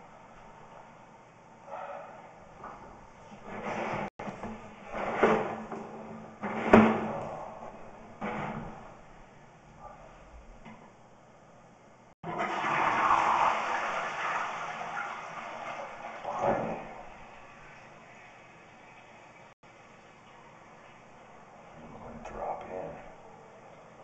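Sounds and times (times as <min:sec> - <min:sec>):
water rushing through drain: 0:12.2 - 0:19.5
water splashing bursts: 0:12.3 - 0:19.5.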